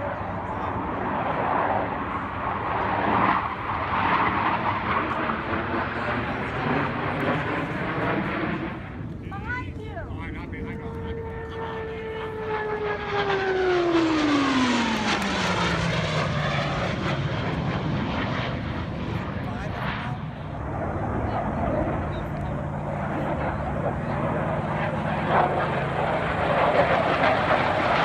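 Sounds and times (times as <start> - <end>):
jets flying past: 0.0 - 28.0.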